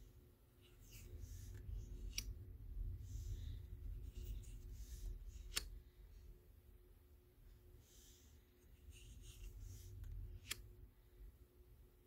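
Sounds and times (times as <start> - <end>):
cards sliding against each other: 0.6 - 5.8, 7.8 - 10.7.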